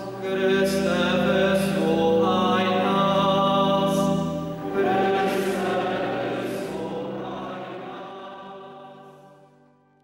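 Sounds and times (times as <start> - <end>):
choral singing: 0.0 - 9.8.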